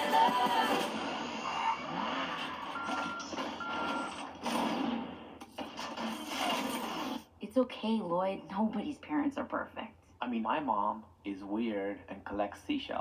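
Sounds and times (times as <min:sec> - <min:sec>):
short steady beeps: 0:02.8 - 0:04.2.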